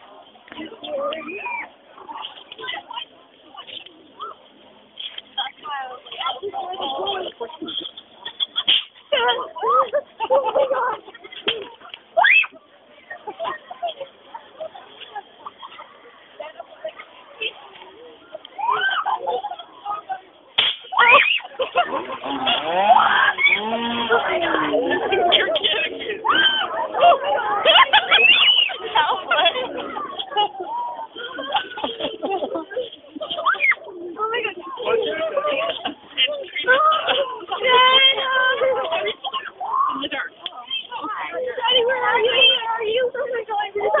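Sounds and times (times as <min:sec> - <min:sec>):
people talking and exclaiming: 0:00.0 - 0:44.0
sharp crack: 0:20.6 - 0:21.0.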